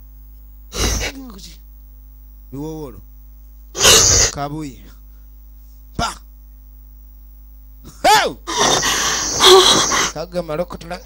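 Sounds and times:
electrical mains hum: 0.0 - 11.0
person gasping and crying out: 3.8 - 4.3, 8.0 - 10.2.

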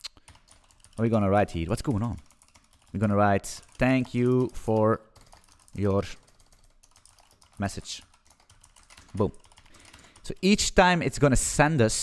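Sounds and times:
keyboard typing clicks: 0.0 - 1.2, 2.2 - 10.4.

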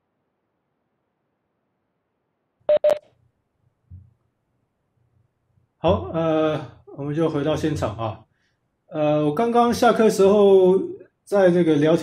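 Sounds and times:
short electronic beeps: 2.7 - 3.0.

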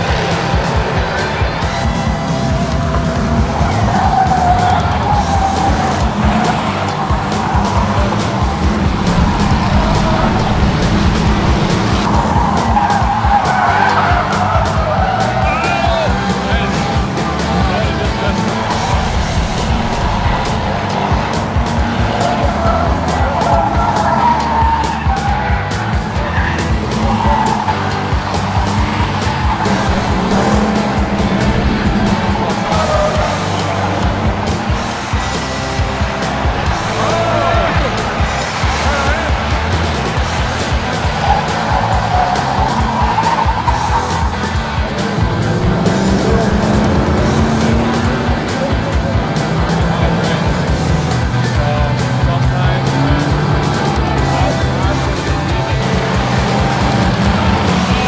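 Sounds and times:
music: 0.0 - 58.0
race car engines under load: 0.0 - 58.0
tires squealing: 0.0 - 58.0.

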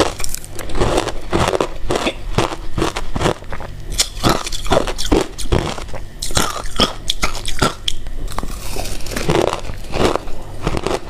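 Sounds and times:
chewing crunchy ice: 0.0 - 11.0.

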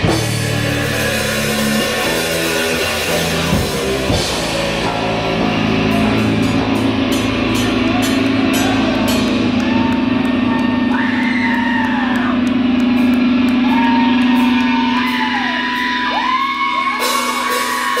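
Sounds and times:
live heavy rock band: 0.0 - 18.0.

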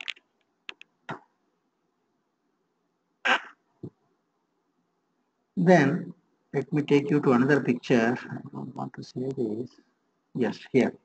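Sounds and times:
man's throat noise: 3.3 - 3.5.

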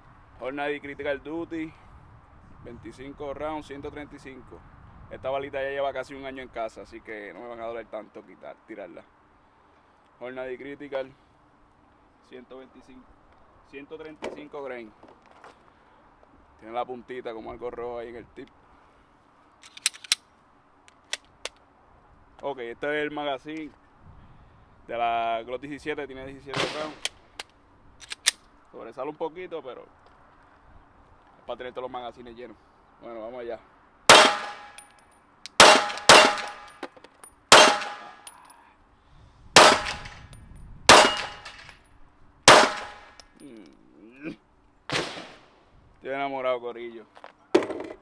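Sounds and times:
sharp metallic clicks: 19.6 - 21.6, 26.6 - 28.5, 34.1 - 38.6, 39.6 - 41.8, 42.5 - 43.6
pistol shots with ringing tail: 26.6 - 27.0, 34.1 - 34.8, 35.6 - 36.8, 37.5 - 38.3, 39.6 - 40.3, 40.9 - 41.7, 42.5 - 43.2.

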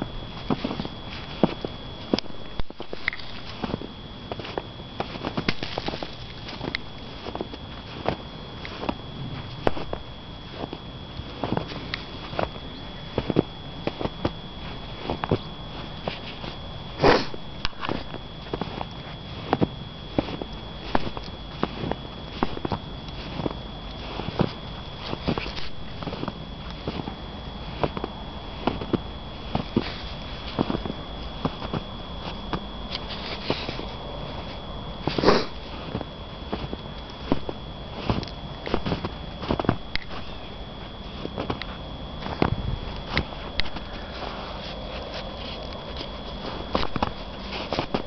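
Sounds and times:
footsteps crunching in deep snow: 0.0 - 48.0.

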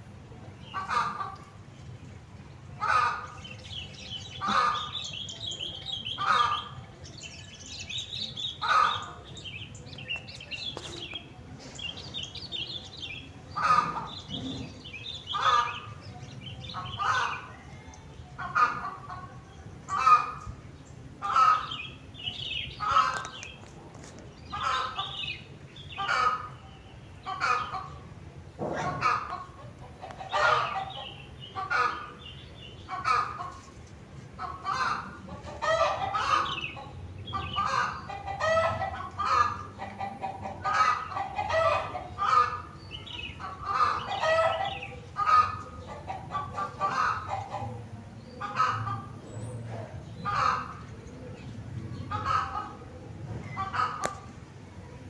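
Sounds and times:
fowl calling: 2.8 - 3.4, 4.4 - 5.0, 6.1 - 6.8, 8.6 - 9.2, 13.6 - 14.3, 28.8 - 32.2, 34.4 - 42.7, 43.4 - 47.8.

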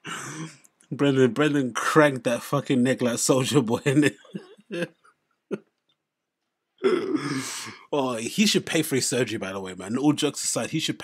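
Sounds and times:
man's raspy throat sound: 0.0 - 0.7, 6.8 - 7.8.

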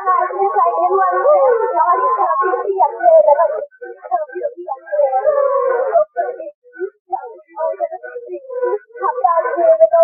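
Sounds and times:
woman singing: 0.0 - 6.5, 7.2 - 10.0.

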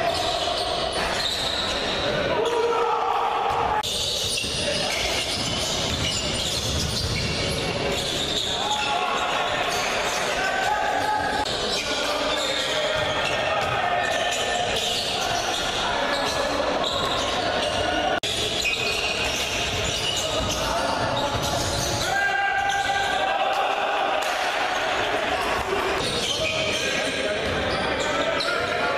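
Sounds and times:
voices echoing in hall: 0.0 - 28.9.

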